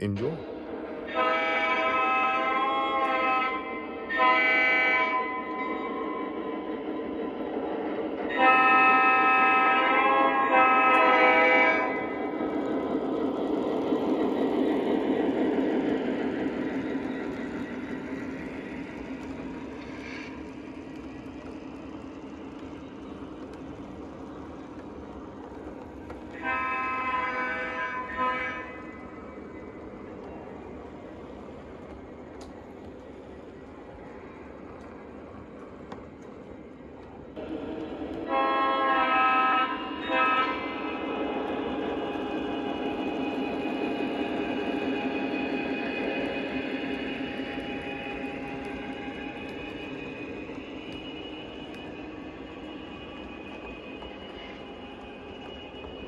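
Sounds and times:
model train horn: 1.1s - 5.3s, 8.3s - 12.0s, 26.4s - 28.8s, 38.3s - 40.9s
model train cars rumbling: 8.3s - 45.6s.

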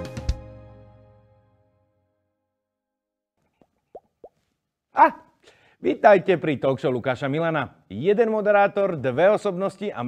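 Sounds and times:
man speaking: 5.0s - 10.0s.

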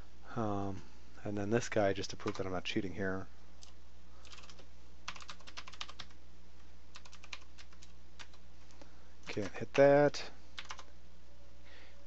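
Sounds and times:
steady low hum: 0.0s - 12.0s
typing on computer keyboard: 2.2s - 2.4s, 3.6s - 6.2s, 6.9s - 8.4s, 10.6s - 10.9s.

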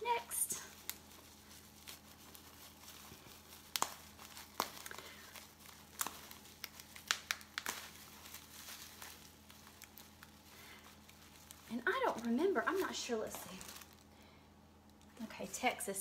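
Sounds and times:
plastic wrapping crinkling: 0.0s - 16.0s
sharp crackles: 0.1s - 14.2s.

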